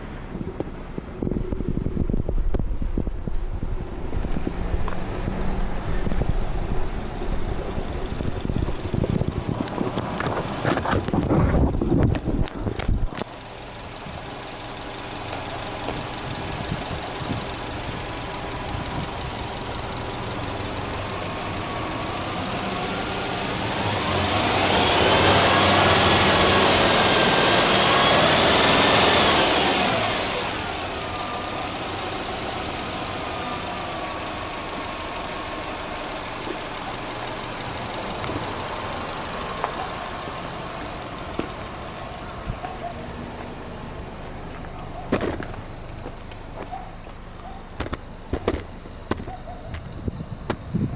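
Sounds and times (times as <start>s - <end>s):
car engine idling and revving: 0.0s - 50.9s.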